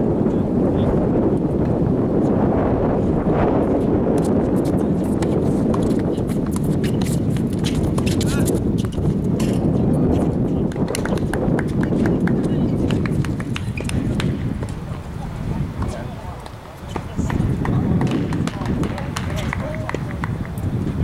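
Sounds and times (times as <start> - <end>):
wind buffeting microphone: 0.0 - 21.0
footsteps on hard court: 4.2 - 15.0, 15.8 - 20.7
ball bouncing on hard court: 5.1 - 9.6, 12.9 - 14.8, 16.9 - 19.6
racket striking ball: 12.9 - 14.8, 15.8 - 20.0.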